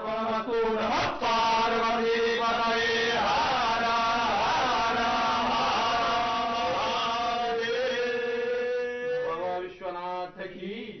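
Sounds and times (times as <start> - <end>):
men chanting: 0.0 - 11.0.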